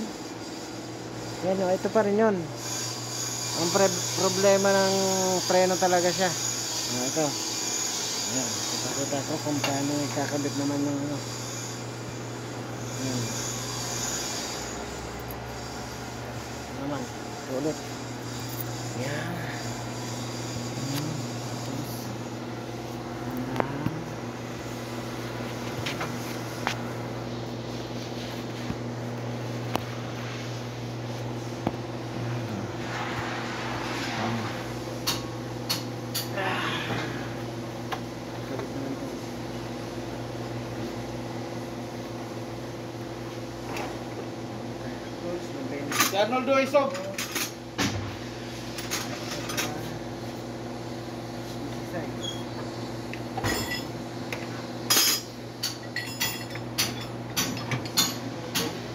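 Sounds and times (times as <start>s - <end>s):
electric machine hum: 0.0s - 58.9s.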